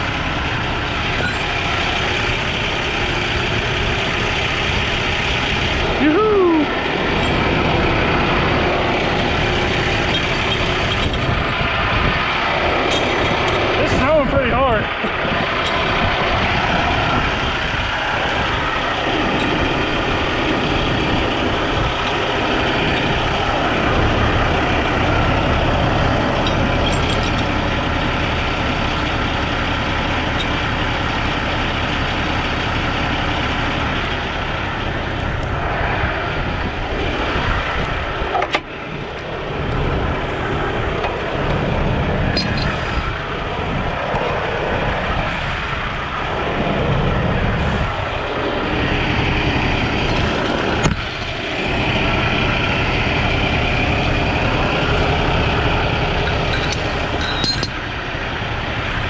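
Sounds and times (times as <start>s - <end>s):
diesel truck engine idling: 0.0s - 59.0s.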